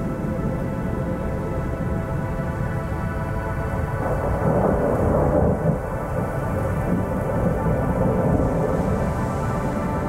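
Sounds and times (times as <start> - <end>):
ambient synth drone: 0.0 - 10.0
rain: 0.0 - 10.0
thunder rumbling: 4.0 - 10.0.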